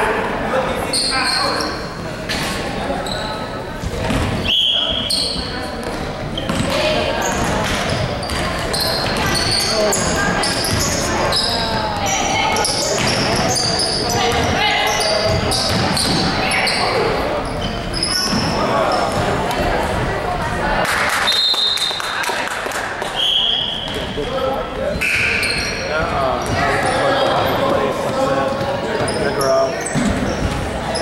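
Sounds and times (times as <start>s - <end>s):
voices of players and spectators: 0.0s - 31.0s
sneakers squeaking on floor: 0.8s - 19.5s, 23.0s - 31.0s
basketball dribbling: 15.3s - 16.3s.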